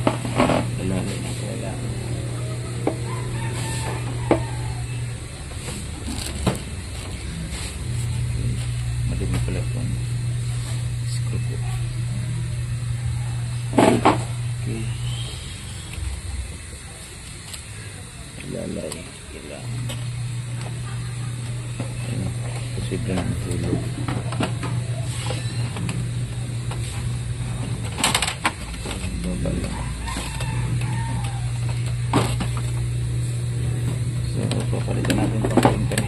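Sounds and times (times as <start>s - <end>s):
low machine hum: 0.0s - 36.0s.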